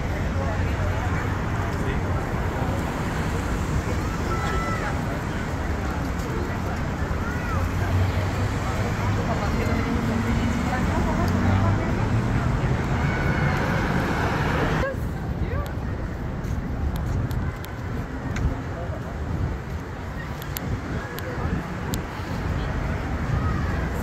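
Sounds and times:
city street traffic rumble: 0:00.0 - 0:24.0.

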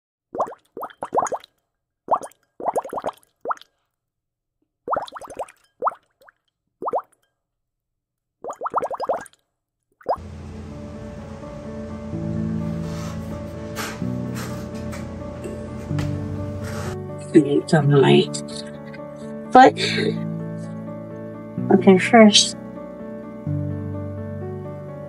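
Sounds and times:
cartoon bubble pops: 0:00.4 - 0:01.5, 0:02.1 - 0:03.7, 0:04.9 - 0:06.0, 0:08.4 - 0:09.4
background music: 0:10.2 - 0:25.0.

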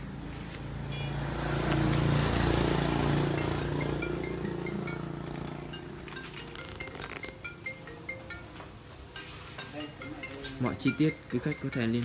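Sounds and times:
vehicle engine passing by: 0:00.0 - 0:06.0.

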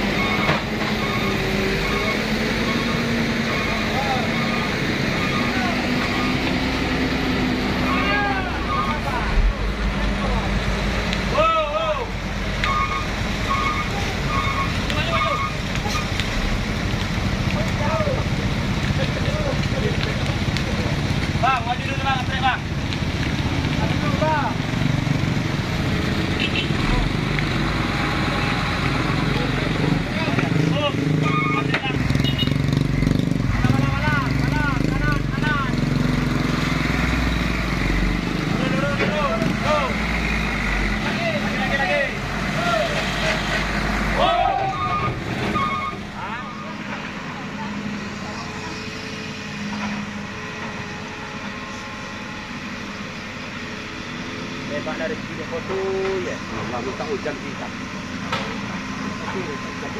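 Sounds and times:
men talking and calling out: 0:00.0 - 0:16.6, 0:17.2 - 0:50.8, 0:54.3 - 0:59.9
diesel truck engines idling: 0:00.0 - 0:59.9.

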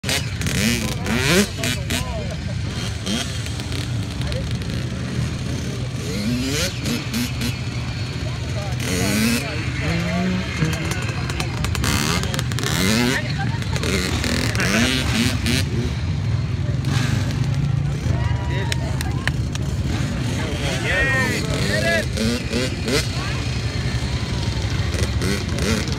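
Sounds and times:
dirt bike engine running: 0:00.0 - 0:25.9
people talking: 0:00.0 - 0:25.9.

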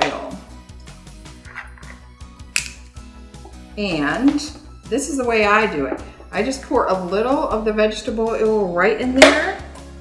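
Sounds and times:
soft background music: 0:00.0 - 0:10.0
screw cap twisting off bottle: 0:01.4 - 0:02.8
sharp click of cap: 0:02.5 - 0:02.9.

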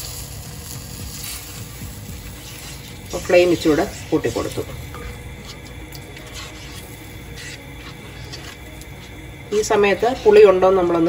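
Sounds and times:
spoon stirring thick curry: 0:02.2 - 0:09.6
spoon scraping pot: 0:02.3 - 0:11.0.

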